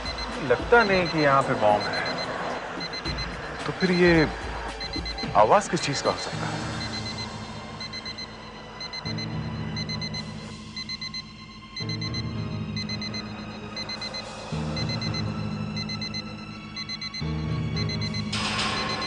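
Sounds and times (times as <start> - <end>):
electronic alarm beeping: 0.0 - 19.0
tense background music: 0.0 - 19.0.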